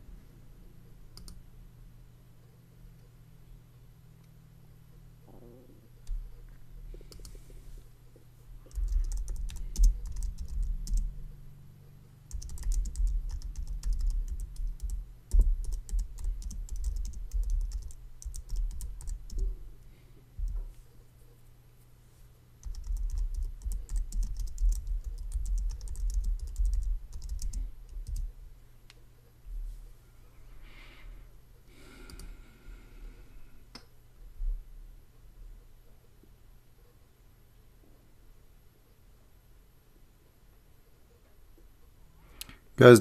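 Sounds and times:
faint low hum: 0.0 - 43.0
typing on a keyboard: 1.2 - 1.4, 8.7 - 11.1, 12.3 - 19.5, 22.6 - 28.3.

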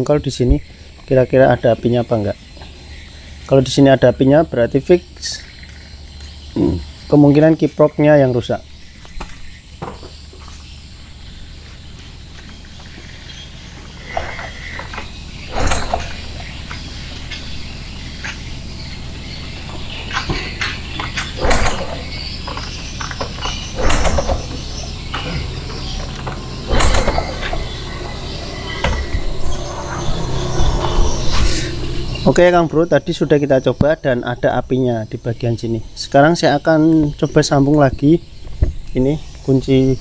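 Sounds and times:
low steady hum: 0.0 - 40.0
mechanical knocks and clatters: 12.0 - 32.3
engine turning over without starting: 14.0 - 32.5.

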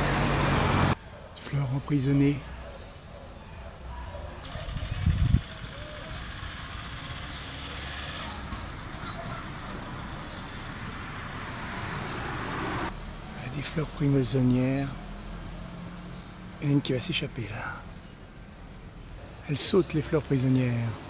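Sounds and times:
vehicle passing: 0.0 - 1.3, 4.6 - 21.0
road traffic noise: 0.0 - 21.0.

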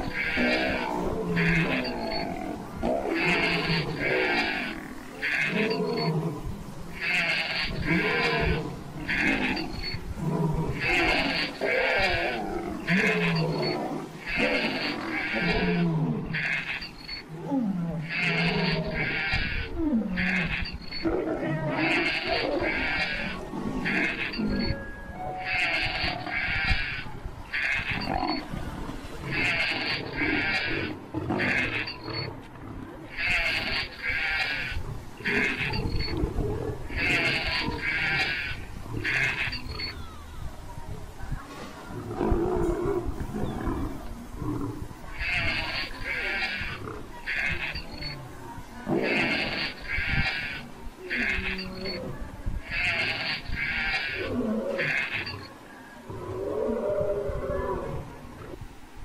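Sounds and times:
lion growling and roaring: 0.0 - 24.9.

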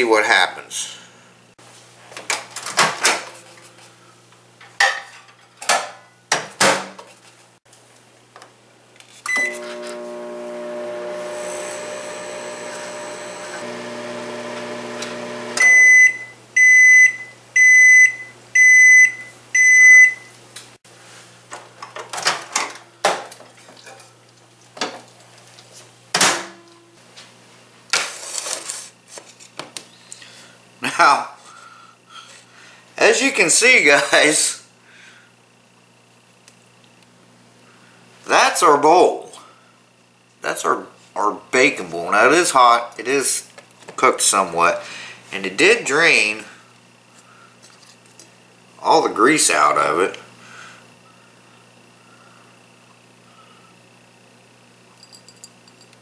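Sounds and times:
microwave beeps: 9.3 - 20.4
microwave oven humming: 9.3 - 20.6, 44.0 - 56.0.

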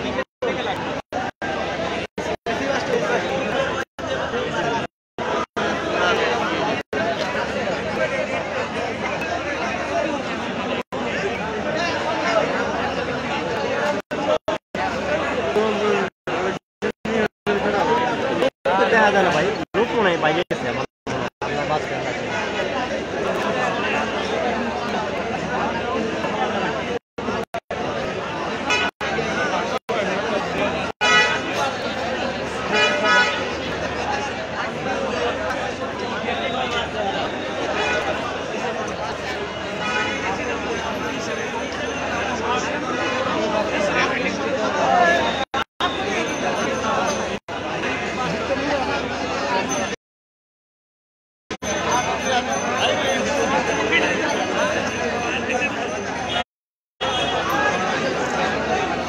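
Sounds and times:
overlapping chatter: 0.0 - 50.0, 51.5 - 59.0
people's voices: 0.0 - 50.0, 51.6 - 56.4, 57.0 - 59.0
street traffic: 0.0 - 50.0, 51.6 - 59.0
vehicle horn honking: 31.0 - 31.6.

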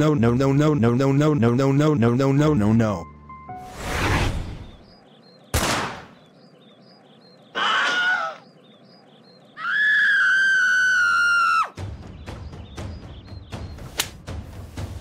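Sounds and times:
birds chirping: 0.0 - 15.0
drum-led music: 11.8 - 15.0.

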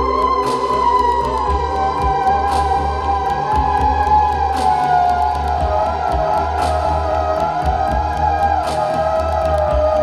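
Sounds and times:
pulsing low bass: 0.0 - 10.0
swell of noise: 0.0 - 10.0
theremin wavering note: 0.0 - 10.0.

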